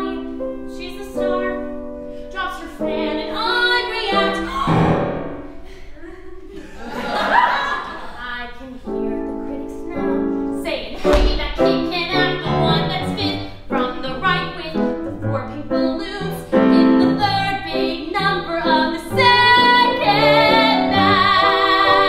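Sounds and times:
woman singing: 0.0s - 4.9s, 8.5s - 22.0s
grand piano accompaniment: 0.0s - 6.0s, 8.5s - 22.0s.

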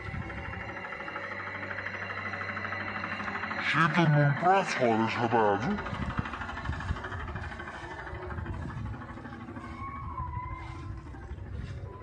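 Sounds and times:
faint music: 0.0s - 12.0s.

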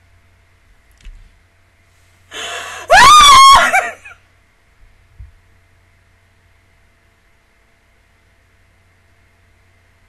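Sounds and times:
woman gasping: 2.3s - 3.0s
woman squealing: 2.4s - 4.1s.

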